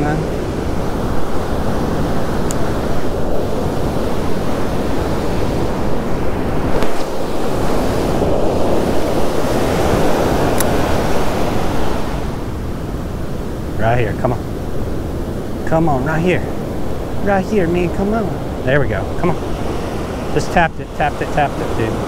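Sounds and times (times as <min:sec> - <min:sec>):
ocean surf breaking: 0:00.0 - 0:22.0
wind buffeting microphone: 0:00.0 - 0:22.0.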